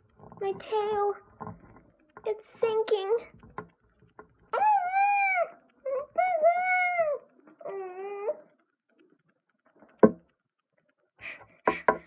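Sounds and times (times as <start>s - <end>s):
plastic toys clicking and rustling: 0.0s - 12.0s
child's high wail: 4.6s - 8.5s.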